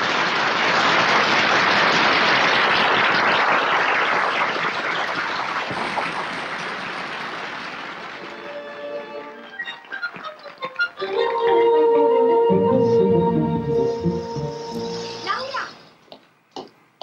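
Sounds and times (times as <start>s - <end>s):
audience applauding: 0.0s - 11.8s
orchestral music: 8.3s - 15.3s.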